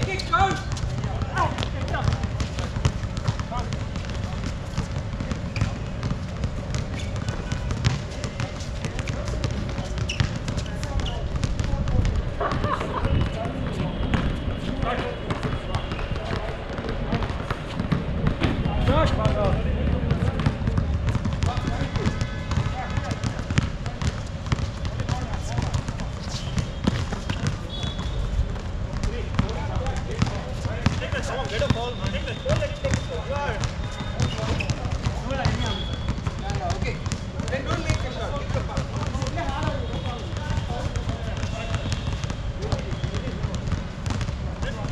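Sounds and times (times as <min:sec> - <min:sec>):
basketball bouncing on court: 0:00.0 - 0:44.9
players calling out: 0:00.0 - 0:44.9.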